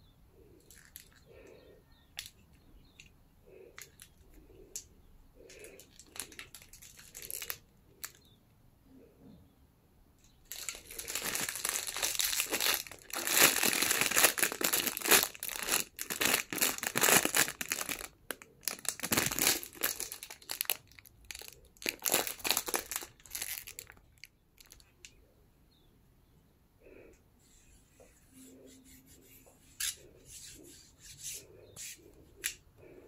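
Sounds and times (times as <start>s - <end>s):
plastic wrapping crinkling: 5.5s - 8.2s, 10.4s - 25.0s.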